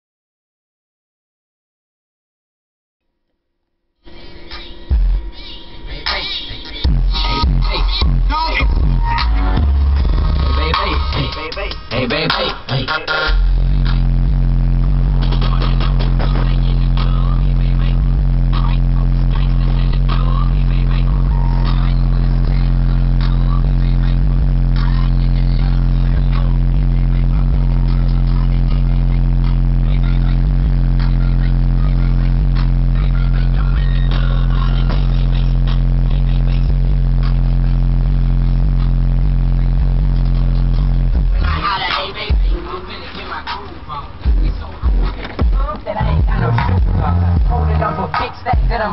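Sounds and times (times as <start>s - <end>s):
deep bass tone from subwoofers: 4.0s - 48.9s.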